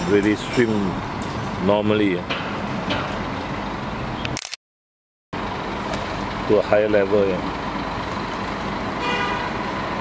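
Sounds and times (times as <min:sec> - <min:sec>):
road traffic noise: 0:00.0 - 0:04.6, 0:05.3 - 0:10.0.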